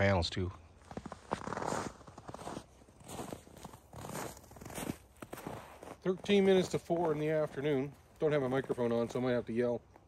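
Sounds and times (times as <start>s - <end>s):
footsteps crunching through snow: 0.7s - 10.0s.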